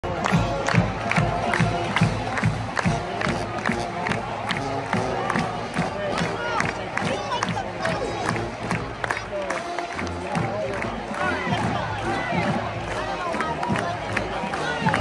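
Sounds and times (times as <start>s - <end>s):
stadium crowd cheering and shouting: 0.0s - 15.0s.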